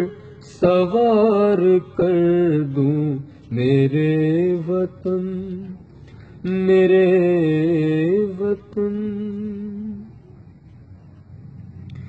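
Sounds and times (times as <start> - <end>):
faint low background noise: 0.0 - 12.0.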